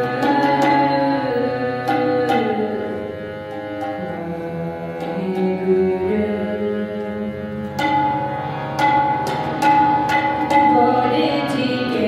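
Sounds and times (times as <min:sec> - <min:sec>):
harmoniums playing slow melody: 0:00.0 - 0:12.0
tabla strokes: 0:00.0 - 0:12.0.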